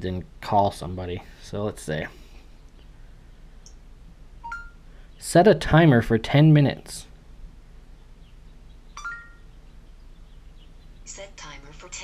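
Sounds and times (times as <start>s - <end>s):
faint room hum: 0.0s - 12.0s
two-tone electronic chime: 4.4s - 4.8s, 9.0s - 9.5s.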